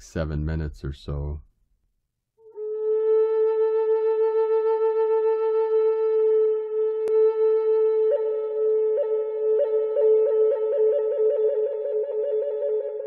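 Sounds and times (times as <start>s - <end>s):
flute playing slow melody: 2.4s - 13.0s.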